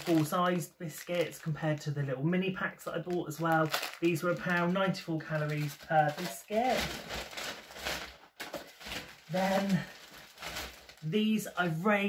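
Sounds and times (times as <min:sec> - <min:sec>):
paper bag rustling: 0:00.0 - 0:00.4, 0:03.1 - 0:11.8.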